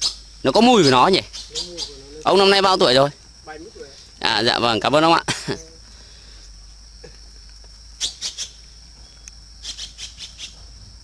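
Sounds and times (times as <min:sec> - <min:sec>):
insect drone: 0:00.0 - 0:11.0.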